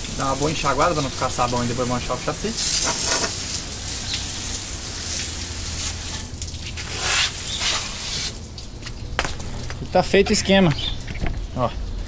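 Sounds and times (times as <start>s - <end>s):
hose spraying water on metal: 0.0s - 9.0s.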